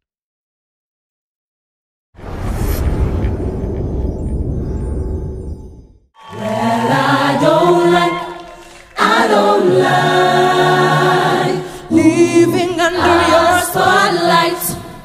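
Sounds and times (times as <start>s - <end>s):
choir singing a cappella: 6.2s - 15.0s.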